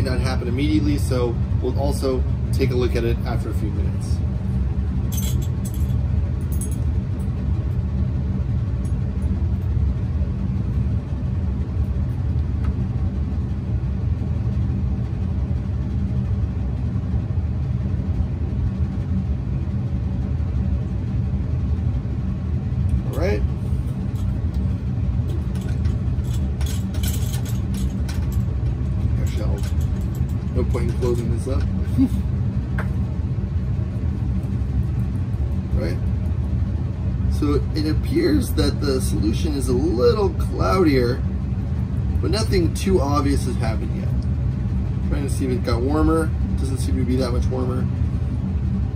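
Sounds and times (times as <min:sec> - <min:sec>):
ventilation rumble: 0:00.0 - 0:48.9.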